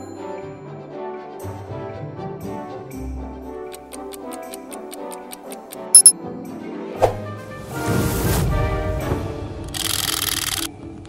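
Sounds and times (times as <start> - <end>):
background music: 0.0 - 11.0
rapid clock ticking: 3.8 - 6.1
high-pitched chime: 5.9 - 6.1.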